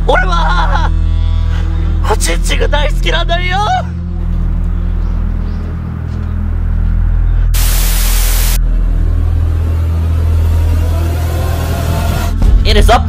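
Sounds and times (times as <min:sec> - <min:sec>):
low droning music: 0:00.1 - 0:12.5
tv static hiss: 0:07.6 - 0:08.6.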